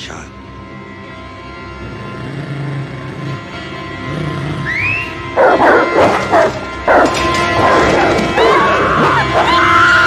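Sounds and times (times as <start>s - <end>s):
film score music: 0.0s - 10.0s
hounds barking: 5.3s - 9.9s.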